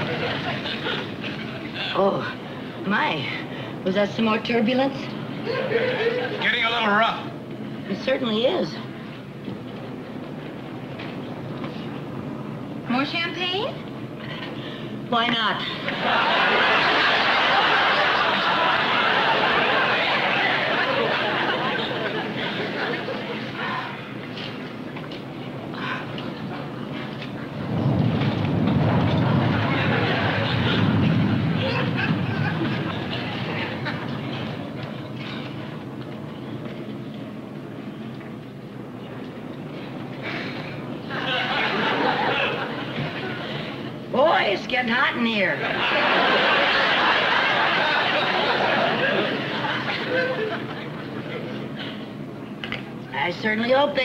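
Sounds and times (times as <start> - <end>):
airliner cabin rumble: 15.8 - 44.1.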